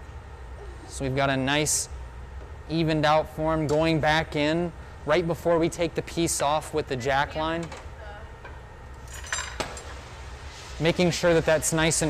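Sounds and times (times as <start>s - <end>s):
steel tools clinking: 9.0s - 10.0s.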